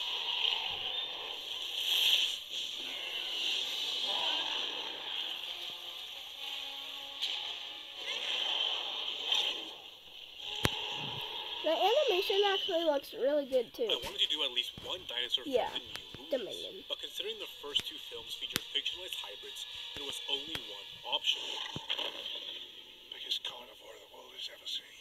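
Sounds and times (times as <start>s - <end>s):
background music: 1.4s - 23.8s.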